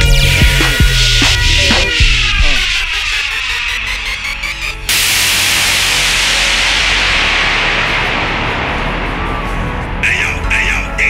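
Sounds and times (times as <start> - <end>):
low bass hum: 0.0 - 11.0
white noise transition effect: 4.2 - 10.5.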